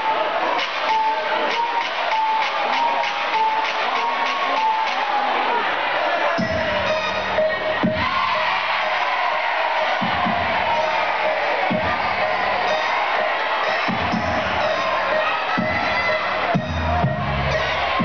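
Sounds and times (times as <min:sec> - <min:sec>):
crowd cheering and shouting: 0:00.0 - 0:18.0
school band playing: 0:00.0 - 0:18.0.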